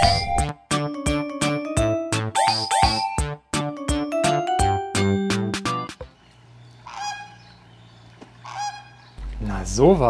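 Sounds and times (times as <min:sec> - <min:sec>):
flamingo honk: 0:06.8 - 0:07.5, 0:08.4 - 0:09.1.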